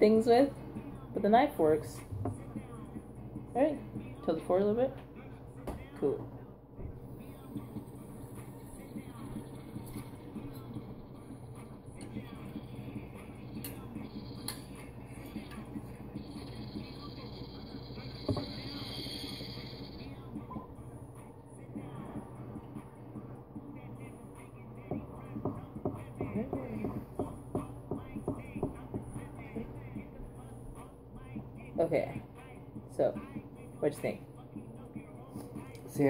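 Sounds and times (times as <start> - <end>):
hiss of drawn air and vapour: 17.8 - 20.0.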